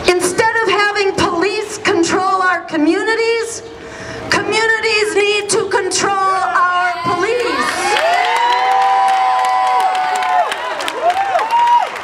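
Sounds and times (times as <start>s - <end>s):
crowd cheering: 7.0s - 12.0s.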